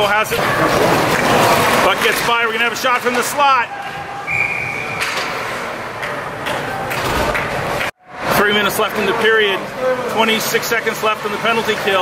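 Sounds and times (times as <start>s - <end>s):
arena noise: 0.0s - 12.0s
referee's whistle blast: 4.3s - 5.1s.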